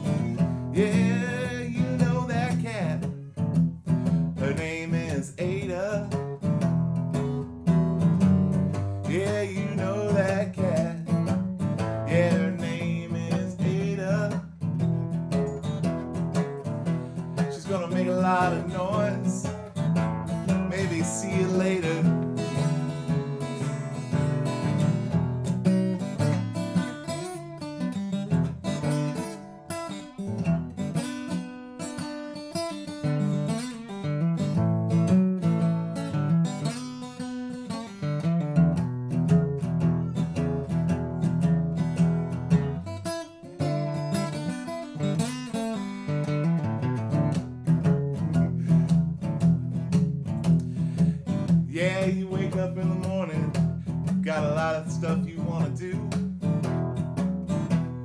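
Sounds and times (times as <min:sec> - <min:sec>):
man singing: 0:00.0 - 0:03.3, 0:04.4 - 0:06.5, 0:09.0 - 0:14.6, 0:17.3 - 0:24.2, 0:51.0 - 0:56.5
acoustic guitar strumming blues: 0:00.0 - 0:58.0.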